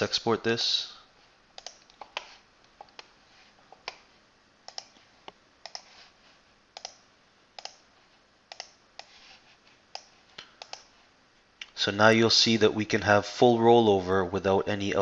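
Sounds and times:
computer mouse clicking: 1.6s - 3.1s, 3.8s - 4.0s, 4.7s - 5.9s, 6.8s - 7.0s, 7.6s - 7.8s, 8.5s - 9.2s, 9.9s - 10.9s.

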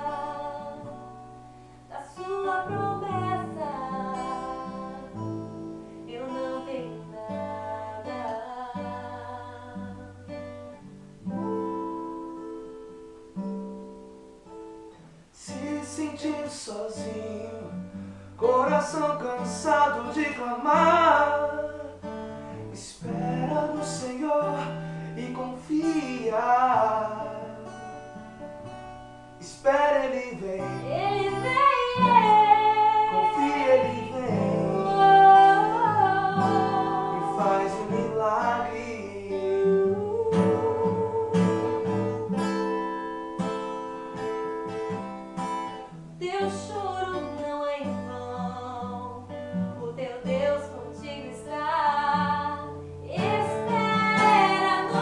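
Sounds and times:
woman singing: 0.0s - 1.2s, 1.9s - 10.4s, 30.2s - 43.1s, 46.2s - 55.0s
acoustic guitar strummed and picked: 0.0s - 55.0s
man singing: 15.4s - 27.7s, 29.4s - 42.7s, 52.3s - 55.0s.

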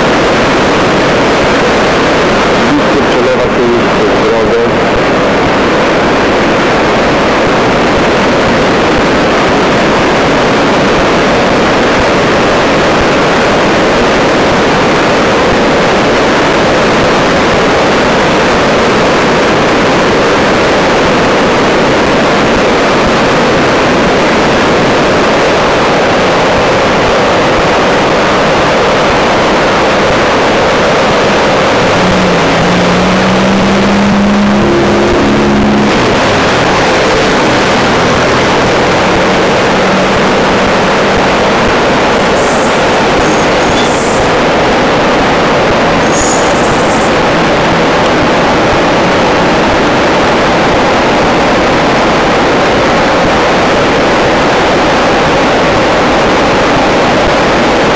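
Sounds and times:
floodwater rushing: 23.5s - 50.7s
low droning tone: 31.3s - 49.8s.

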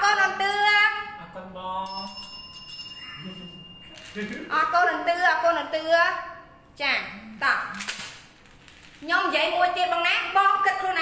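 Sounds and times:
high steady ringing tone: 1.7s - 6.5s.

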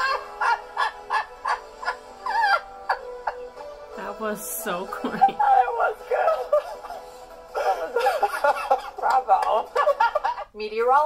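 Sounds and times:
people laughing hard: 0.0s - 3.8s, 4.9s - 10.5s.

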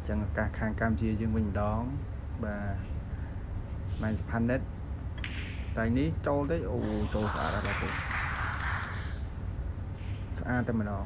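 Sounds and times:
low steady hum: 0.0s - 11.0s
audience applauding: 6.8s - 9.3s.

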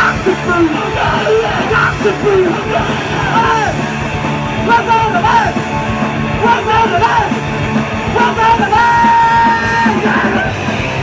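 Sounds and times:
rock band with electric guitars: 0.0s - 11.0s
yelled vocals: 0.0s - 11.0s.

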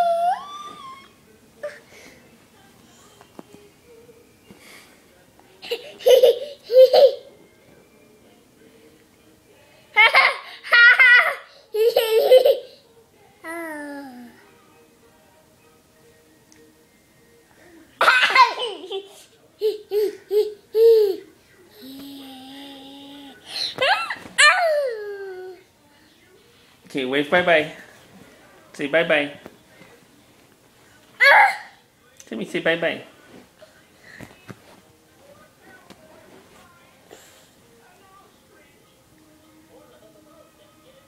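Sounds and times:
toddler laughing: 5.6s - 7.3s, 10.0s - 12.8s, 18.0s - 21.3s.

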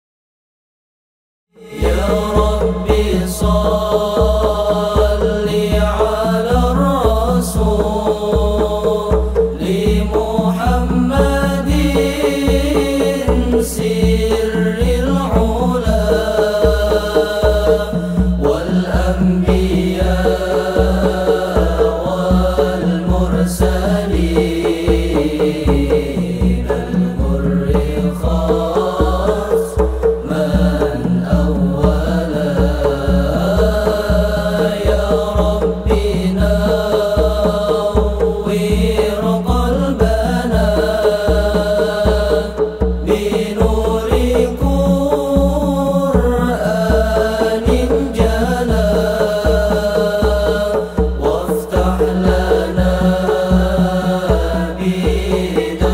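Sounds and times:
boys singing into microphones: 1.6s - 55.9s
frame drums beating: 1.6s - 55.9s.

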